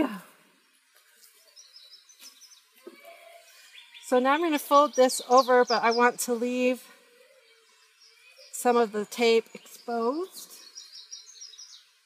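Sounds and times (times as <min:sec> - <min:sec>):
outdoor ambience: 0:00.0 - 0:12.0
bird chirps: 0:00.6 - 0:12.0.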